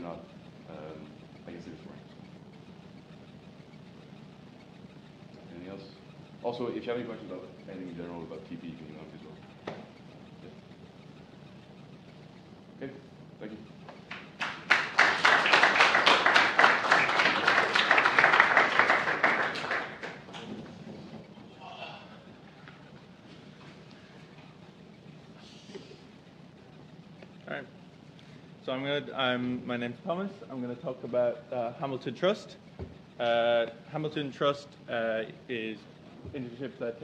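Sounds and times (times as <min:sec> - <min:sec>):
audience applauding: 0:14.0 - 0:20.6.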